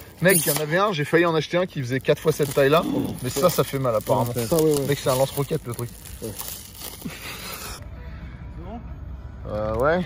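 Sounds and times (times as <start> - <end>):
plastic wrapper crinkling: 0.0 - 7.8
low outdoor rumble: 1.0 - 10.0.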